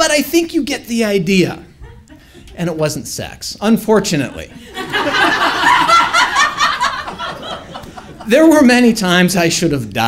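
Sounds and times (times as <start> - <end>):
audience laughing: 1.7 - 2.8, 3.9 - 8.6.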